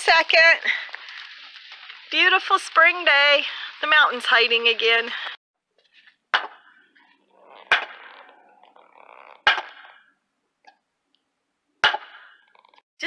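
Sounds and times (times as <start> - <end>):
hammer striking wooden post: 6.4 - 6.7, 7.7 - 8.0, 9.4 - 10.0, 11.8 - 12.4.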